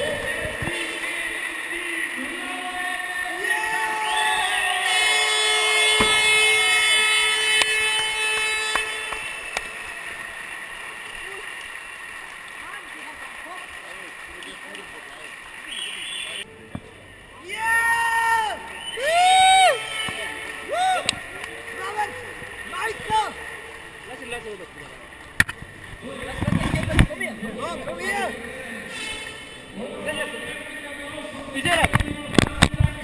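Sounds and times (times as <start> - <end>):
loud drawn-out calls: 0.0 - 11.9, 15.0 - 16.5
arena crowd din: 0.0 - 33.0
long held note: 4.7 - 9.6.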